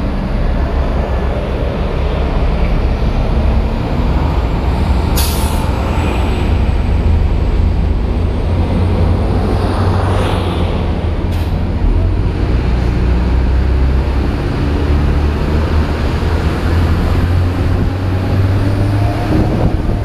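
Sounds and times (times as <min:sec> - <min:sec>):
bus engine idling: 0:00.0 - 0:09.6
air brake hiss: 0:05.2 - 0:05.8.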